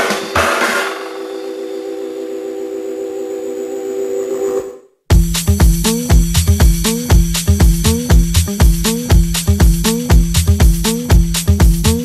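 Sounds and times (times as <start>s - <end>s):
held synth chord: 0.0s - 4.9s.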